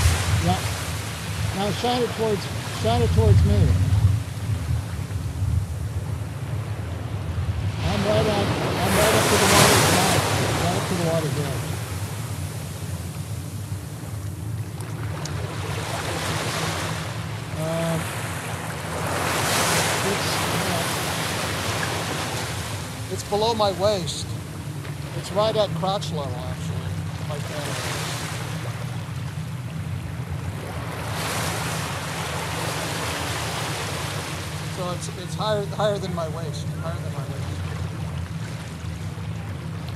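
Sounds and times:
wind buffeting microphone: 0.0s - 25.7s
ocean surf breaking: 0.0s - 39.9s.

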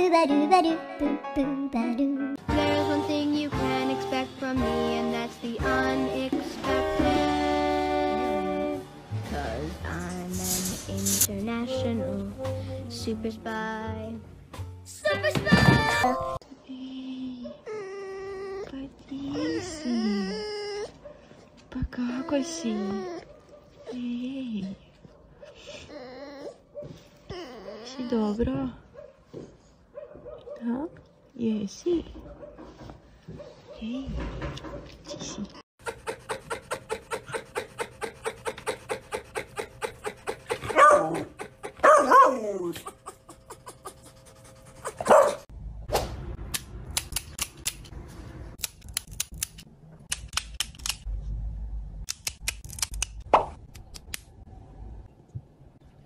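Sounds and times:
fox whimpering: 17.5s - 21.1s, 25.6s - 28.3s, 35.8s - 45.3s.

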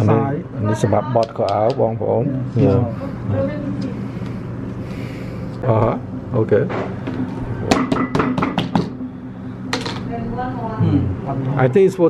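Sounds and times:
steady low hum: 0.0s - 12.0s
sharp knocks: 7.7s - 9.1s.

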